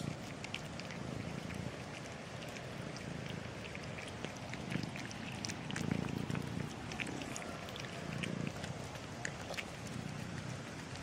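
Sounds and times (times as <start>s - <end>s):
cat purring: 0.0s - 11.0s.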